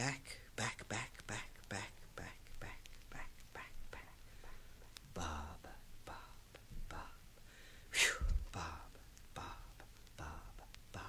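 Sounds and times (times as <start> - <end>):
man whispering syllables: 0.0 - 7.3, 7.9 - 11.0.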